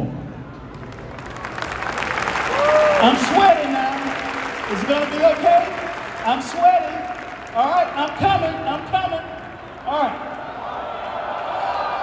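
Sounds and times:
arena audience applauding: 0:00.7 - 0:12.0.

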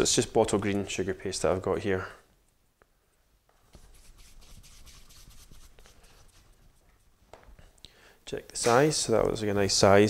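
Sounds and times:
hands kneading sugarpaste: 0:03.7 - 0:07.2.

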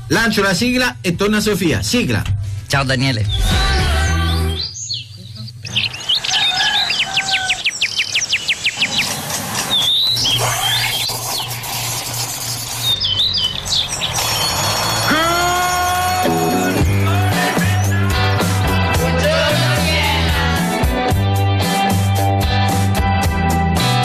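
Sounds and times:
birdsong chirps and trill: 0:03.0 - 0:18.0
rising pitched call: 0:03.3 - 0:17.9.

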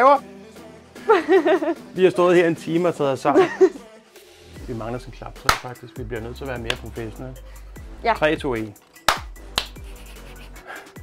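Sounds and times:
sharp hand claps: 0:05.4 - 0:05.8, 0:06.6 - 0:07.0, 0:09.0 - 0:10.2.

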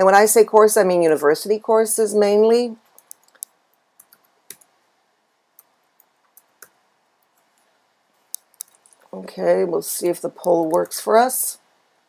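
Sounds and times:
computer keyboard keystrokes: 0:02.9 - 0:04.7.

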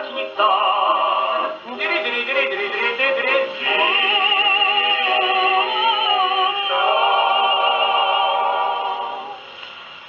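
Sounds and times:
male vocal quartet singing harmony: 0:00.0 - 0:09.4.

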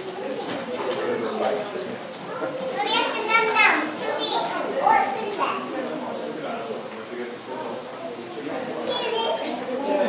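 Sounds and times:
children talking and calling out: 0:00.0 - 0:06.1, 0:07.9 - 0:10.0
crowd chatter: 0:00.0 - 0:10.0.

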